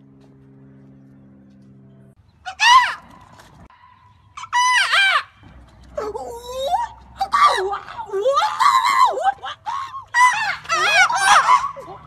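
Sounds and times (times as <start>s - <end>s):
women screaming and squealing: 2.5s - 3.1s, 4.4s - 5.4s, 6.0s - 12.0s.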